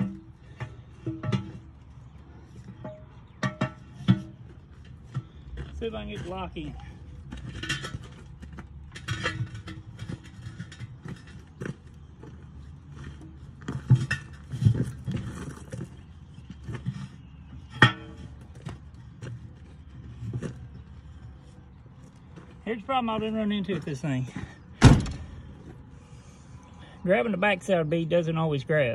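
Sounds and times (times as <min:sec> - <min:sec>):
steel bar clanking against wheel: 0:00.0 - 0:01.8, 0:02.6 - 0:06.4, 0:07.3 - 0:11.7.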